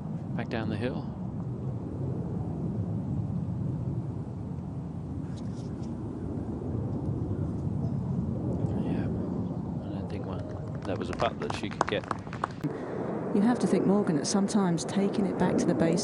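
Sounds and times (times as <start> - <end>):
wind rumble on microphone: 0.0 - 16.0.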